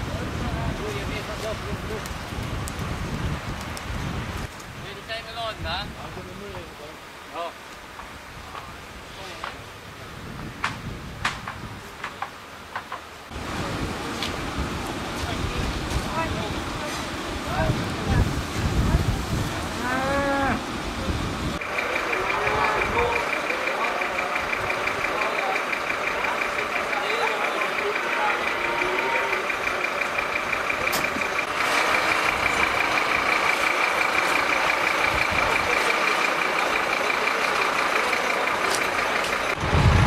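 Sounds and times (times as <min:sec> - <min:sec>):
pulsing electronic warning tone: 0:21.6 - 0:31.8.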